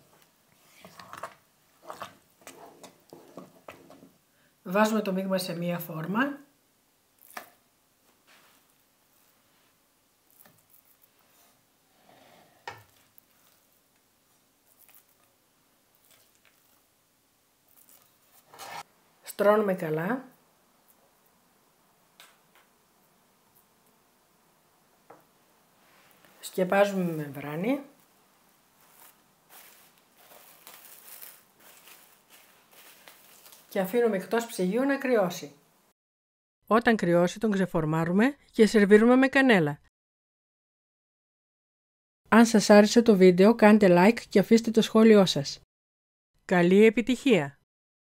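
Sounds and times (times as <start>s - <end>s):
spoon scraping thick food: 0.8s - 4.1s
cling film crinkling: 14.6s - 16.9s, 17.6s - 18.6s, 28.0s - 34.5s.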